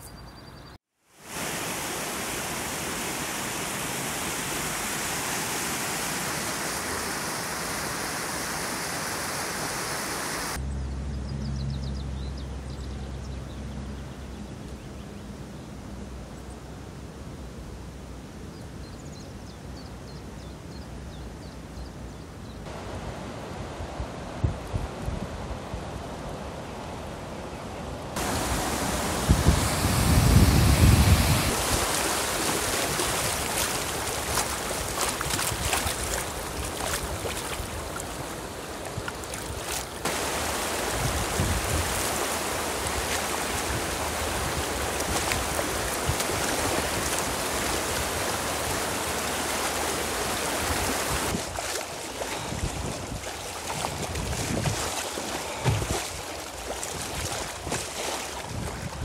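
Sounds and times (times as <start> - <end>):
water rushing through sluice: 1.2 - 10.6, 28.2 - 59.0
splashing thumps: 31.5 - 38.2, 50.6 - 58.2.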